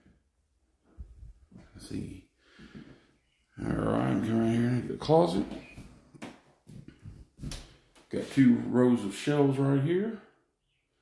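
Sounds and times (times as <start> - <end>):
soft footsteps on floor: 0.8 - 1.9, 4.8 - 8.5.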